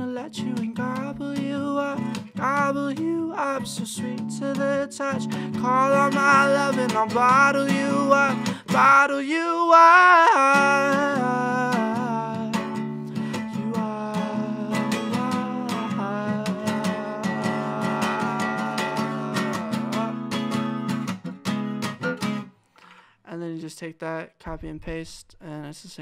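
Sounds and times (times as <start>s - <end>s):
man singing: 0.0s - 21.0s, 23.3s - 26.0s
acoustic guitar strumming: 0.0s - 22.7s.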